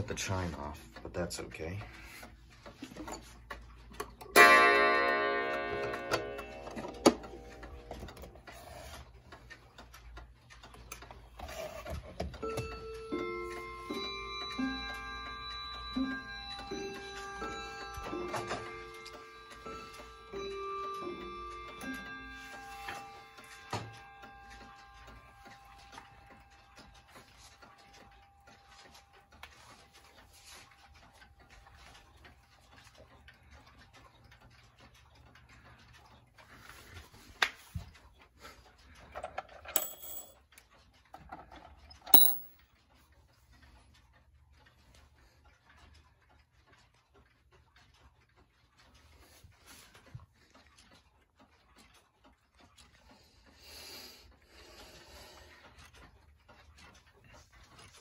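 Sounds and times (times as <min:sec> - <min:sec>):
clocks ticking: 0:00.0 - 0:08.5
clock chimes playing a tune: 0:04.3 - 0:07.7, 0:12.4 - 0:28.9
clock wire gong ringing: 0:04.3 - 0:07.9.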